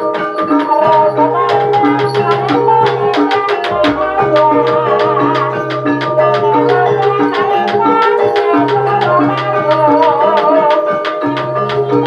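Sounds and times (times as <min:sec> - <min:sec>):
hand drums beating rapidly: 0:00.0 - 0:12.0
ringing pot gongs and metallophones: 0:00.0 - 0:12.0.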